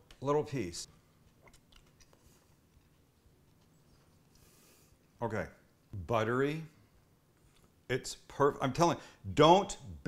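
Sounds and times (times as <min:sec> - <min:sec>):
man chewing food: 0:01.0 - 0:05.2.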